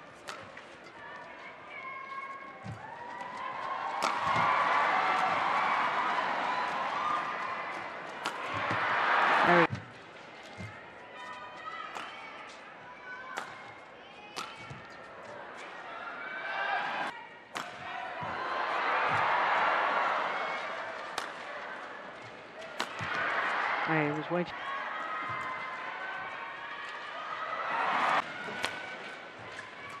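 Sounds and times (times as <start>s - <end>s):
rackets striking shuttlecock: 0.2s - 0.7s, 3.9s - 9.9s, 11.9s - 12.4s, 13.3s - 15.0s, 17.5s - 18.4s, 19.1s - 21.7s, 22.6s - 23.7s, 28.1s - 30.0s
crowd cheering and applauding: 2.8s - 9.7s, 18.0s - 22.1s, 22.7s - 29.0s.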